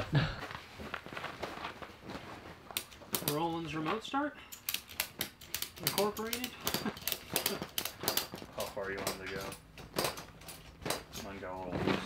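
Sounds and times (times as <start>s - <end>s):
strap handling: 0.5s - 12.0s
ratchet clicks: 4.5s - 8.4s.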